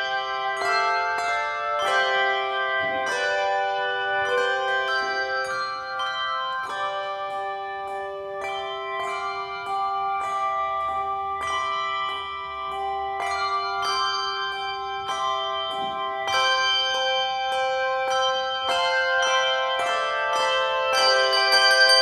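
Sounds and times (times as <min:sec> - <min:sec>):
handbell choir playing: 0:00.0 - 0:22.0.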